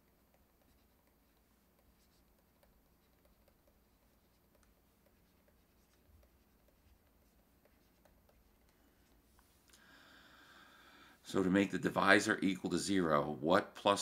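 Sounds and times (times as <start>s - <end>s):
stylus writing on tablet: 0.0s - 9.6s.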